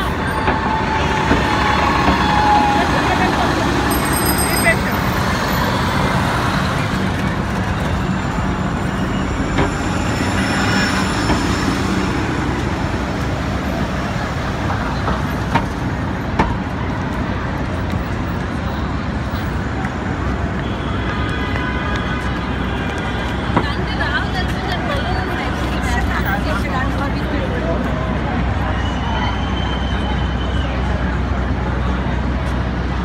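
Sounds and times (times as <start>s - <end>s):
cars and bus passing: 0.0s - 33.0s.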